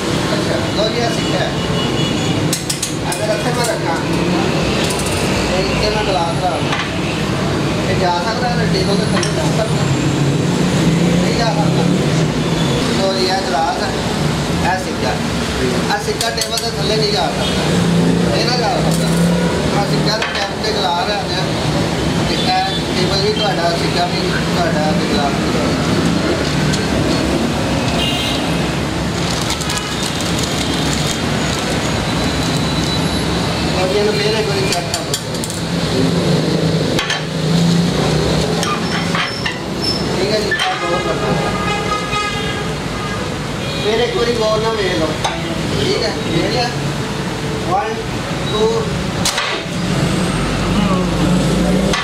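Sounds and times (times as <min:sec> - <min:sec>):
man talking: 0:12.9 - 0:17.5, 0:22.3 - 0:25.7.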